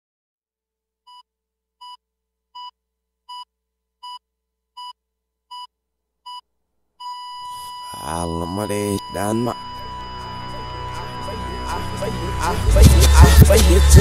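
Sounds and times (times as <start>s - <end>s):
short electronic beeps: 7.0s - 10.9s
steady electronic tone: 7.4s - 14.0s
reversed hip-hop music: 7.5s - 14.0s.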